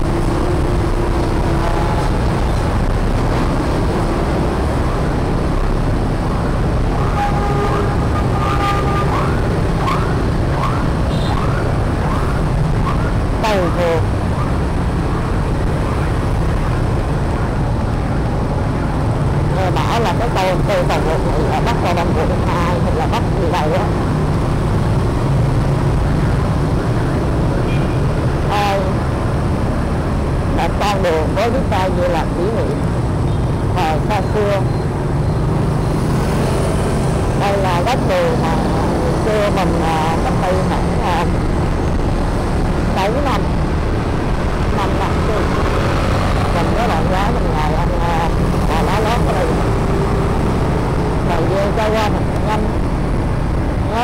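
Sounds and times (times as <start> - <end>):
motorbike engine and road rumble: 0.0 - 54.0.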